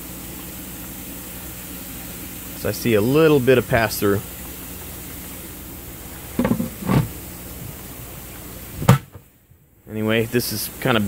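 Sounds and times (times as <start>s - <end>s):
water running through filter: 0.0s - 11.0s.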